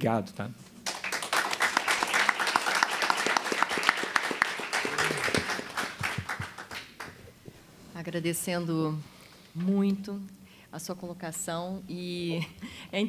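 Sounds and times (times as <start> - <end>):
audience applauding: 0.8 - 7.2.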